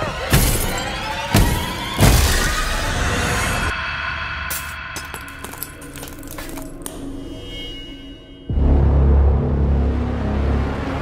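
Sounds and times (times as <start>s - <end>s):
tense music: 0.0s - 11.0s
glass shattering: 0.3s - 2.4s, 4.5s - 6.9s.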